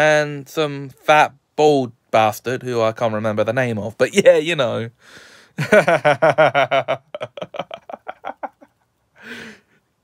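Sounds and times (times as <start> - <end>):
man laughing: 5.6 - 8.9.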